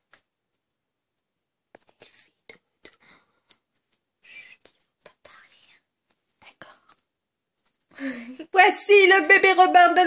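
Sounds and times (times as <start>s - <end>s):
soft whispering: 1.8s - 3.6s, 4.2s - 7.1s.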